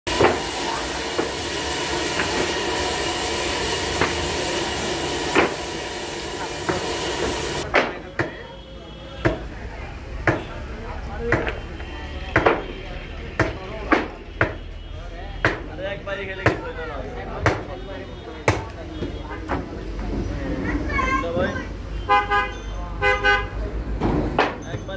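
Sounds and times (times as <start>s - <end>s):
band saw running: 0.1s - 7.6s
people talking: 0.1s - 24.9s.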